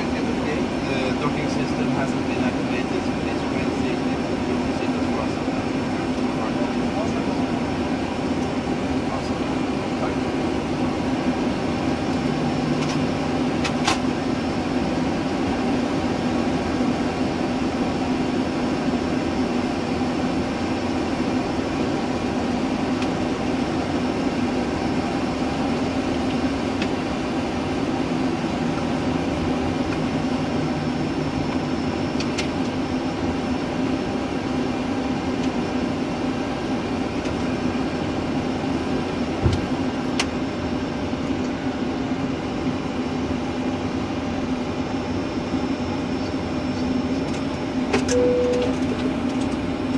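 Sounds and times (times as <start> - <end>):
aircraft systems humming: 0.0 - 49.9.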